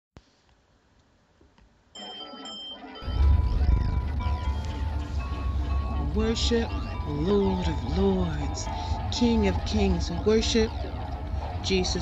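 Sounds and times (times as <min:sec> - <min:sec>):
music: 0:02.0 - 0:12.0.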